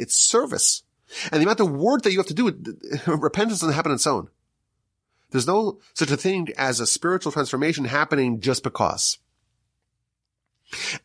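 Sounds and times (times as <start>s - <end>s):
man speaking: 0.0s - 4.4s, 5.3s - 9.3s
man's sharp intake of breath: 10.7s - 11.0s.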